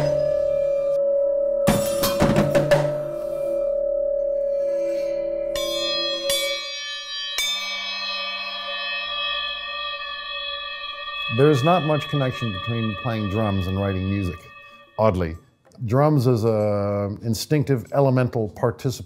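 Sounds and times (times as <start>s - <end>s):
bell-like metal ringing: 0.0s - 15.5s
sharp metal hits: 1.6s - 3.4s.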